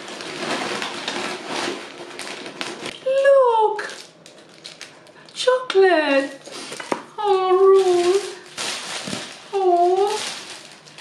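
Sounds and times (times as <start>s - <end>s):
paper bag rustling: 0.0s - 5.1s, 6.4s - 11.0s.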